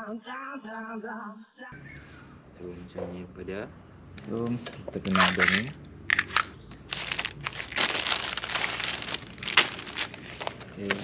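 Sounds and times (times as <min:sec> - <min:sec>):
plastic bag crinkling: 0:05.0 - 0:11.0.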